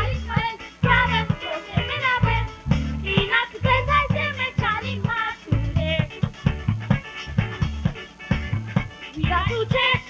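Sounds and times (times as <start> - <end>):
band accompaniment with bass and beat: 0.0 - 10.0
boy singing into a microphone: 9.2 - 10.0.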